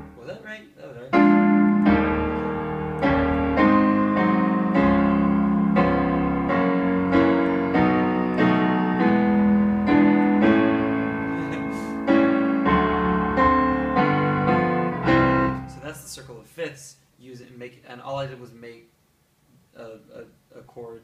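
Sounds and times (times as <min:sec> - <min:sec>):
piano block chords: 0:00.0 - 0:00.3, 0:01.1 - 0:16.1.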